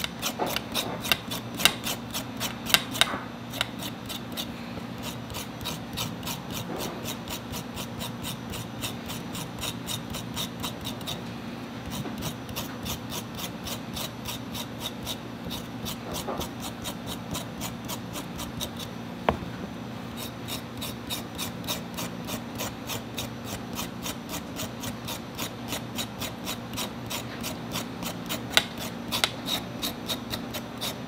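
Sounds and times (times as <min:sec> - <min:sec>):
knife scraping root skin: 0:00.0 - 0:18.9, 0:20.1 - 0:31.0
steady low hum: 0:00.0 - 0:31.0.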